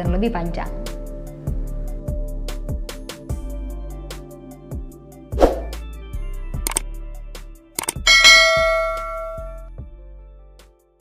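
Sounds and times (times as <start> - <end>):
soft background music: 0.0 - 11.0
mouse clicks: 7.8 - 8.0
notification bell ding: 7.9 - 9.6.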